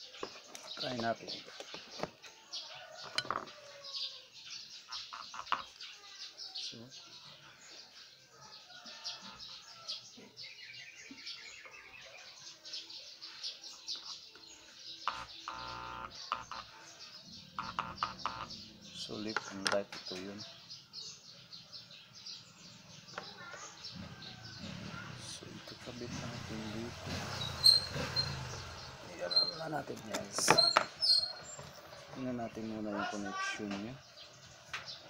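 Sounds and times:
small birds chirping: 0.0 - 35.0.

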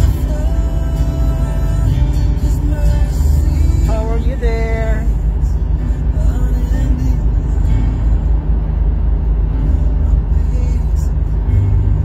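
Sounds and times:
music playing: 0.0 - 12.0
road and engine rumble: 0.0 - 12.0.

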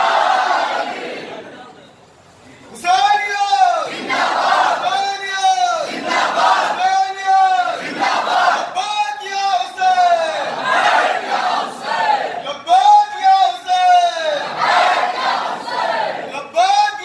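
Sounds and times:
crowd of men shouting together: 0.0 - 1.4, 3.6 - 8.8, 9.6 - 12.5, 13.6 - 16.4.

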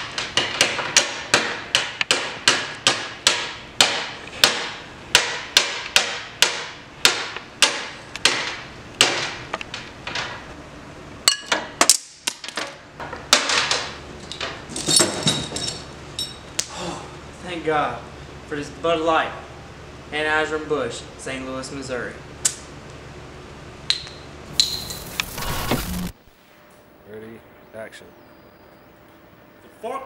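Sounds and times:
sharp knocks like hammer blows: 0.0 - 9.5.

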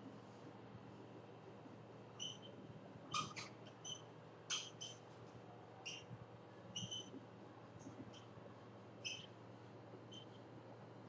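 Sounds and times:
faint room hum: 0.0 - 11.0
marker squeaking on whiteboard: 2.2 - 5.0, 5.8 - 6.1, 6.7 - 7.2, 9.0 - 9.3, 10.1 - 10.4.

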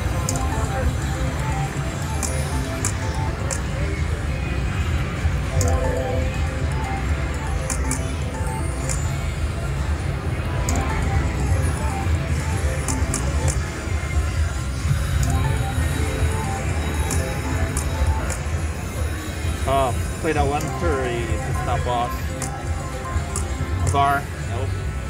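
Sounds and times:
slot machine reels spinning: 0.0 - 4.2, 5.2 - 9.8, 10.4 - 24.5
background music: 0.0 - 25.0
crowd chatter: 0.0 - 25.0.

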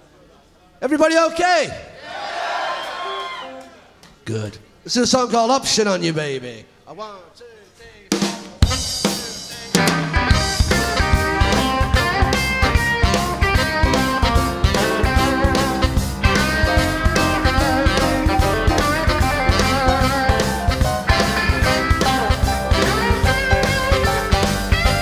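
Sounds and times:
drums beating: 7.9 - 25.0
blues-rock band playing: 8.1 - 25.0
electric guitar: 9.8 - 25.0.

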